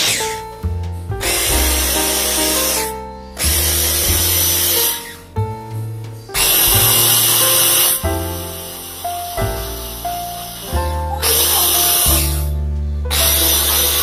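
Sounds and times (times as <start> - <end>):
background music: 0.0 - 14.0
food chopper motor pulsing: 6.4 - 8.0, 13.2 - 14.0.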